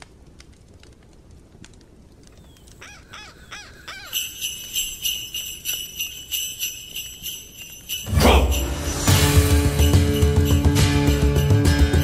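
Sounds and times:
wood fire crackling: 0:00.0 - 0:12.0
crow cawing: 0:02.8 - 0:04.6.

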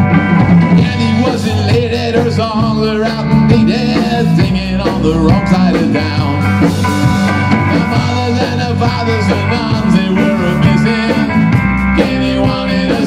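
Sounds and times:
drum kit: 0:00.0 - 0:13.0
electric bass: 0:00.0 - 0:13.0
electric guitar: 0:00.0 - 0:13.0.

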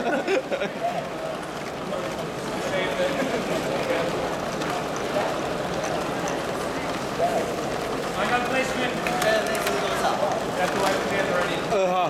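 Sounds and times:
crowd hubbub in a hall: 0:00.0 - 0:12.0.

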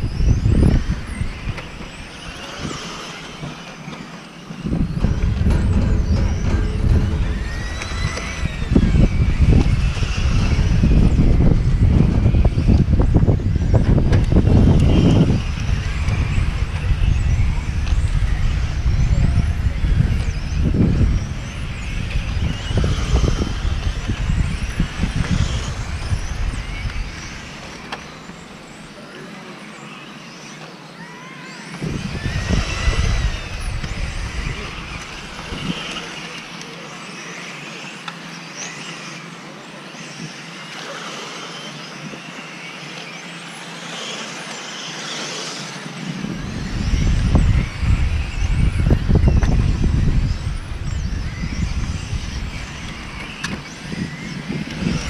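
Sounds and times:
electric toy car motors whining: 0:00.0 - 0:55.0
heavy low rumble: 0:04.6 - 0:27.9.

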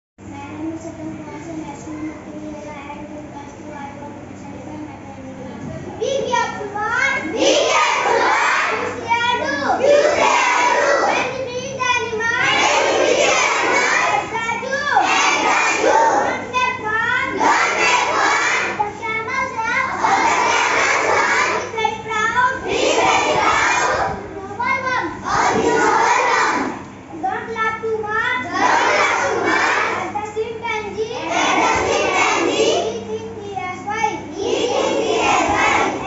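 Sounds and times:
children's voices: 0:00.2 - 0:36.0
boy reciting loudly: 0:00.3 - 0:05.4, 0:06.0 - 0:36.0.

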